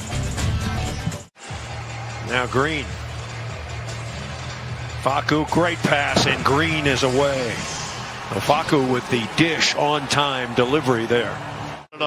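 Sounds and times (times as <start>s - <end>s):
crowd noise: 1.4s - 12.0s.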